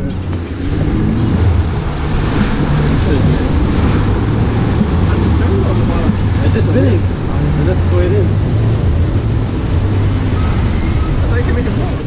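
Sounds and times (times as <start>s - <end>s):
rushing churning water: 0.0s - 12.0s
steady low rumble: 0.0s - 12.0s.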